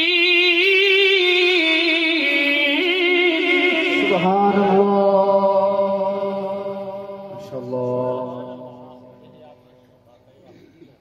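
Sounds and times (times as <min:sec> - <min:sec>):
man reciting melodically: 0:00.0 - 0:10.4.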